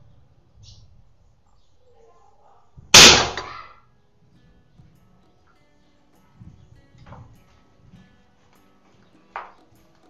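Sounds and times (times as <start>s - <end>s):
air rifle crack: 3.0s - 3.8s.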